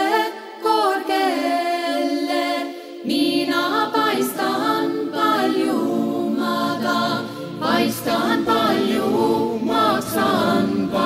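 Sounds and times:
choir singing: 0:00.0 - 0:11.0
singers breathing: 0:07.2 - 0:07.6.

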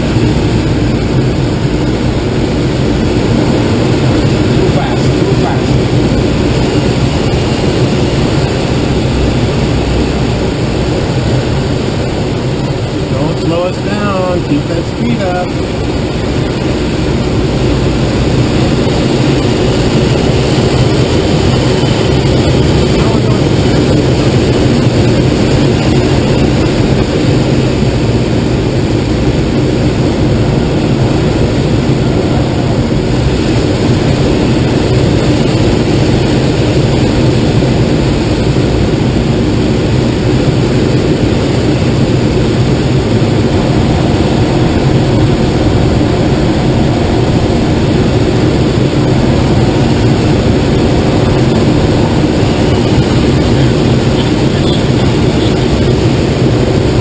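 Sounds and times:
loud rush of air: 0:00.0 - 0:57.0.

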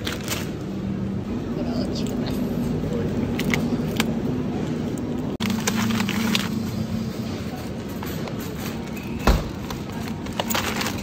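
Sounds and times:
shopping trolley rattling: 0:00.0 - 0:01.1, 0:01.7 - 0:11.0.

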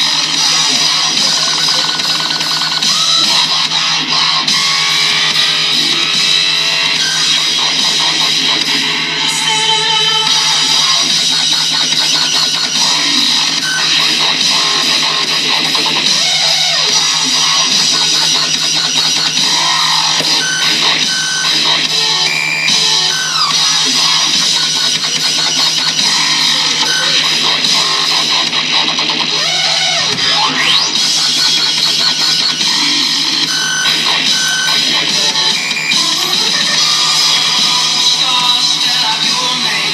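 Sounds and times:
electronic dance music: 0:00.0 - 0:39.9.

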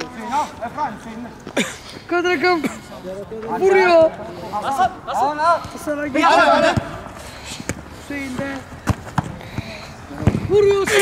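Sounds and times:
football being kicked: 0:08.8 - 0:10.6.

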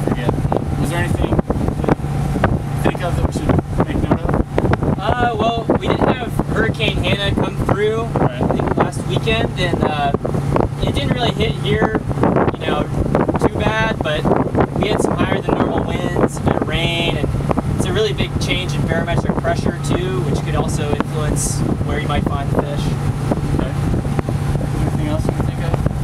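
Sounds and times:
people talking: 0:00.0 - 0:02.0, 0:02.8 - 0:04.4, 0:05.0 - 0:10.2, 0:10.8 - 0:23.0, 0:23.6 - 0:23.8, 0:24.7 - 0:25.9
boat engine humming: 0:00.0 - 0:26.0.

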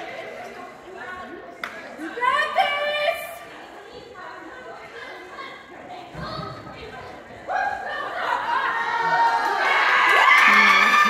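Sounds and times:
voices calling out in a hall: 0:00.0 - 0:11.0.

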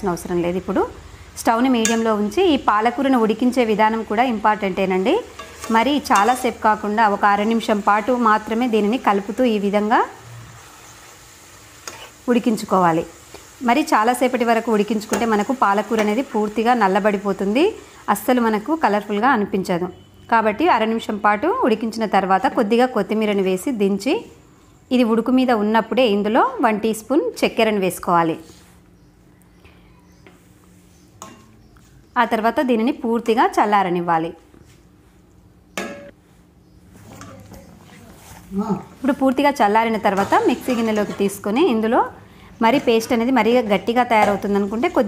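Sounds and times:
leaves sizzling in a pan: 0:00.6 - 0:19.6, 0:38.0 - 0:45.0.

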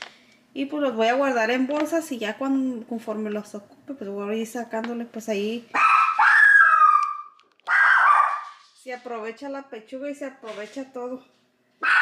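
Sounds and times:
dog whining: 0:05.8 - 0:08.6.

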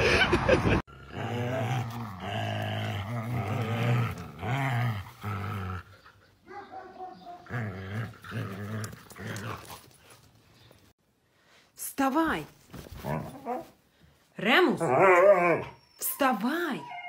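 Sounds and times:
dogs growling in play: 0:00.9 - 0:06.3, 0:07.3 - 0:10.3.

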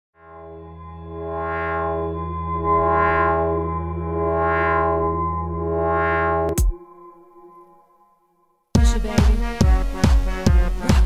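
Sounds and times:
synthesizer intro music: 0:00.2 - 0:08.9.

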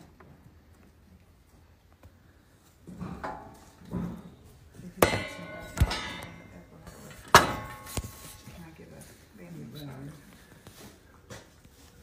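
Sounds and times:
knocks on metal bars: 0:05.0 - 0:06.5, 0:07.2 - 0:08.2.

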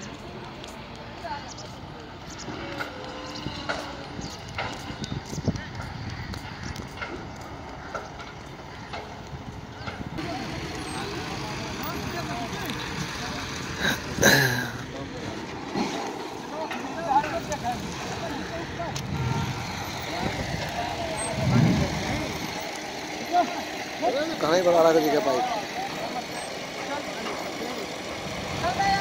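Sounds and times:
voices of workers: 0:00.0 - 0:29.0
heavy machinery running: 0:01.8 - 0:29.0.

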